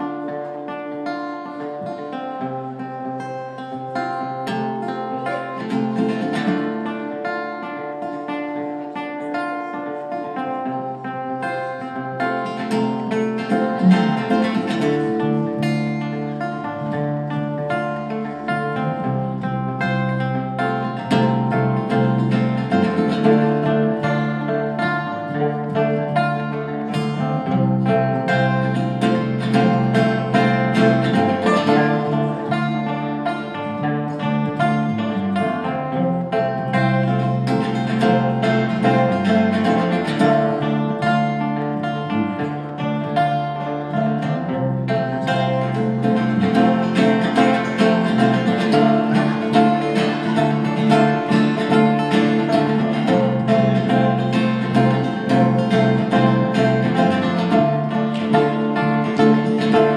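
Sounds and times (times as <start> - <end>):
acoustic guitar strumming: 0.0 - 59.9
banjo picking fast notes: 0.0 - 59.9
electric bass line: 12.2 - 59.9.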